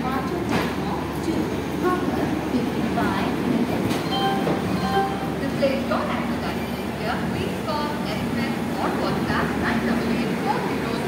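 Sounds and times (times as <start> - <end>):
train hum and hiss: 0.0 - 11.0.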